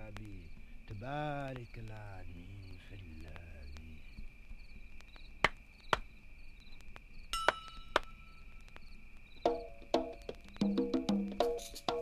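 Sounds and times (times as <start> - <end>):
faint steady high tone: 7.3 - 9.7
small bell ringing: 7.4 - 7.9.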